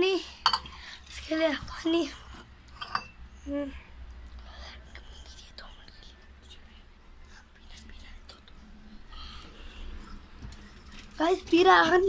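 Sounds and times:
low steady hum: 0.0 - 12.0
soft whispering: 3.4 - 11.8.

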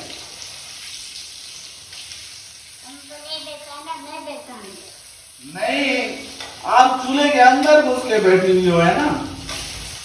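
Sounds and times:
fish sizzling in a frying pan: 0.0 - 10.0.

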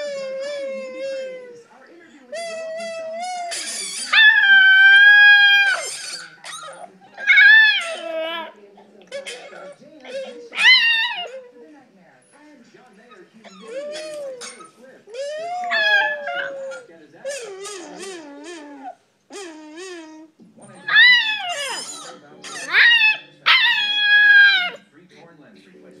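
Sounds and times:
puppy howling: 0.0 - 1.6, 2.3 - 11.6, 13.4 - 24.8.

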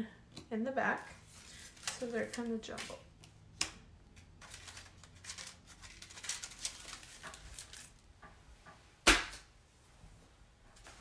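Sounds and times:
paper cards rustling: 1.2 - 8.1.

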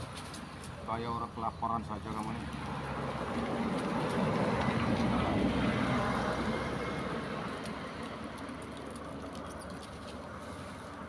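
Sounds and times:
vehicle passing on road: 0.0 - 11.0.

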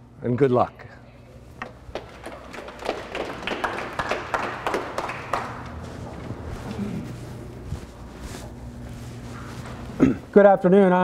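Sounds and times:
audience clapping: 1.6 - 6.3.

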